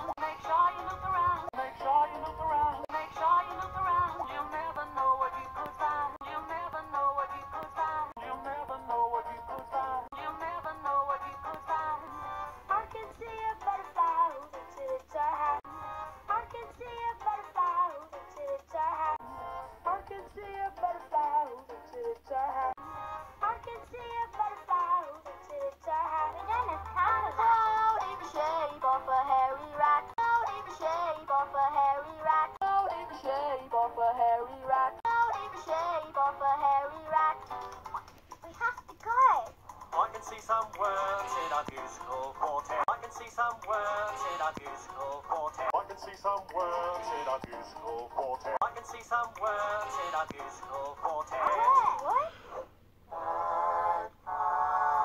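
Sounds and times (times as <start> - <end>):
cartoon characters singing: 0.0 - 38.0, 39.9 - 52.3
backing music: 0.0 - 38.1, 39.6 - 52.0.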